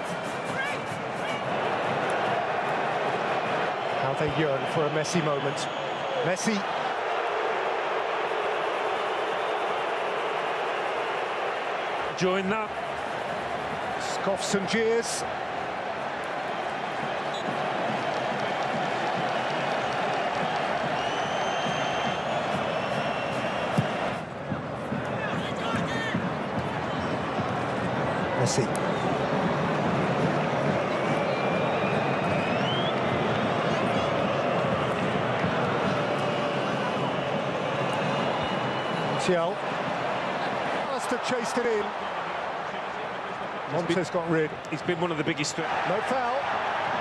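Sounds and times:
stadium crowd voices: 0.0s - 47.0s
high whistles from crowd: 5.1s - 6.7s, 17.0s - 24.2s, 30.8s - 39.6s.

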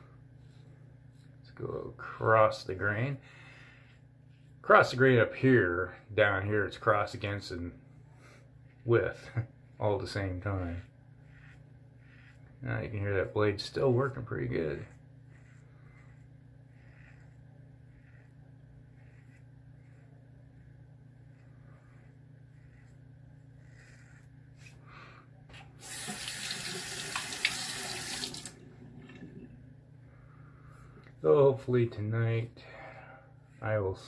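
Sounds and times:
razor scraping through stubble: 0.4s - 24.9s
water tap running: 25.8s - 29.5s.

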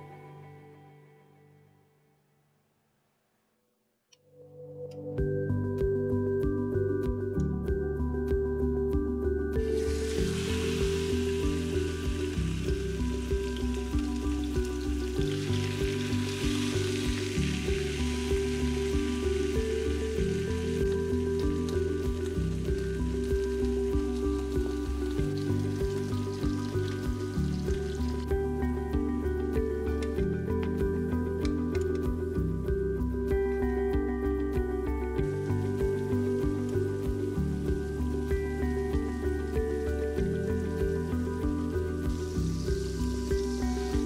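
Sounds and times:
background music with steady beat: 4.5s - 44.0s
chicken sizzling in hot oil: 9.6s - 32.3s, 35.2s - 44.0s.

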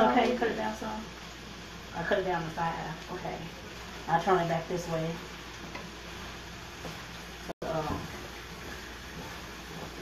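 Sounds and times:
vegetables sizzling in skillet: 0.0s - 10.0s
spatula stirring: 3.2s - 10.0s.

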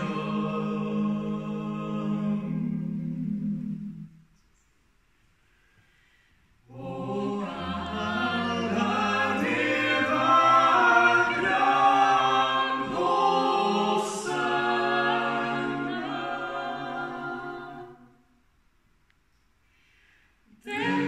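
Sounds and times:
a cappella group singing: 0.0s - 4.1s, 6.6s - 18.3s, 20.5s - 21.0s.

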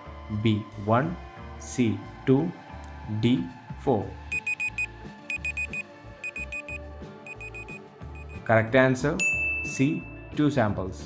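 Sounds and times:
background music with bass: 0.0s - 11.0s
timer beeping: 4.3s - 8.4s.

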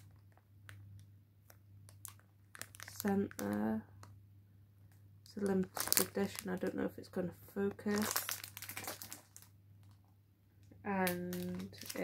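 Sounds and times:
cellophane crinkling: 0.0s - 4.2s, 4.9s - 10.1s, 10.9s - 12.0s.

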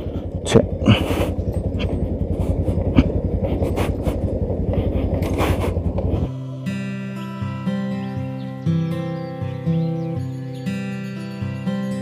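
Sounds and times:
motorcycle engine running: 0.0s - 7.6s
wind noise: 0.8s - 6.3s
music: 6.3s - 12.0s.

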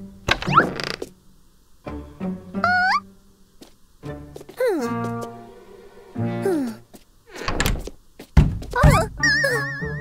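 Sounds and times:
heavy cartoon thuds: 7.7s - 9.1s.

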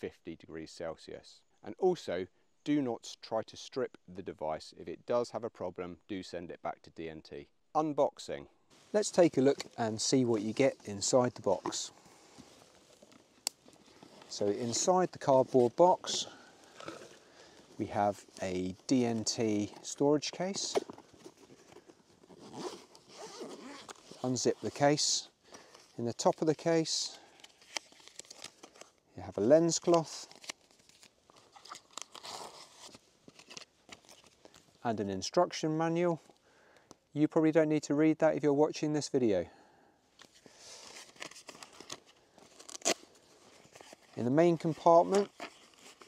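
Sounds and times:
paper and card rustling: 8.9s - 34.8s, 40.2s - 46.0s
cardboard box handling: 16.7s - 17.2s.

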